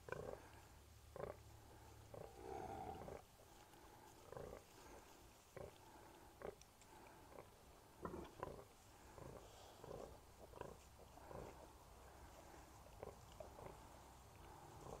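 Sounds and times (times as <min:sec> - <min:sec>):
pigs grunting: 0:00.0 - 0:03.3, 0:04.2 - 0:05.0, 0:05.6 - 0:15.0.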